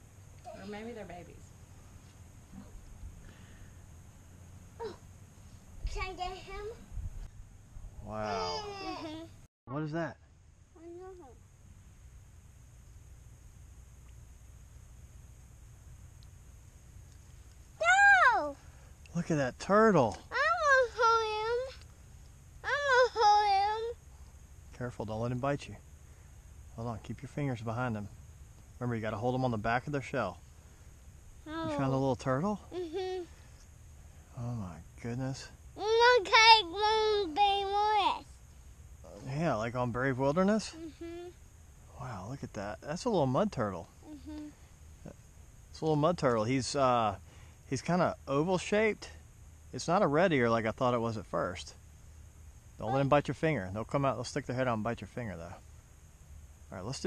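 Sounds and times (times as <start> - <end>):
faint low rumble: 0.0 - 57.0
child crying out: 8.2 - 9.3, 22.6 - 23.9.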